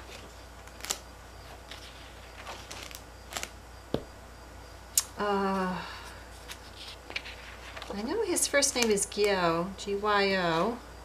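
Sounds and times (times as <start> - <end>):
paper pages rustling: 0.0 - 3.6, 6.3 - 8.2.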